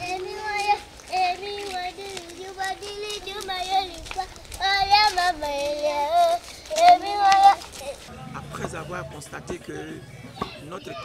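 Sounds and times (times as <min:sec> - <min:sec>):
children singing: 0:00.0 - 0:11.0.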